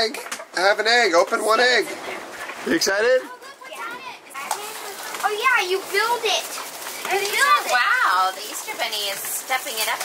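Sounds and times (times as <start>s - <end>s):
young children chattering: 3.2s - 10.0s.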